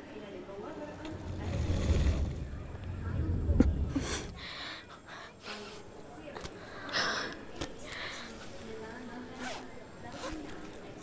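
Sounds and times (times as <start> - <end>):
zipper being pulled open: 9.4 - 10.8.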